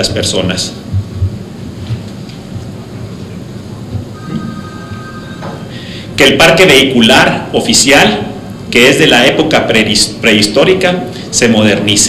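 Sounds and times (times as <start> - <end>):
low rumbling room noise: 0.0 - 12.0
faint steady high tones: 4.1 - 6.0.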